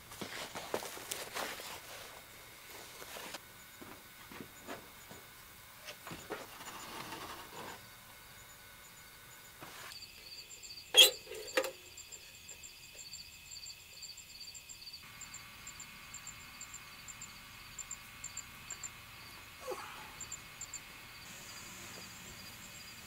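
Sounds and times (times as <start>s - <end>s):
crickets chirping: 0.0s - 23.0s.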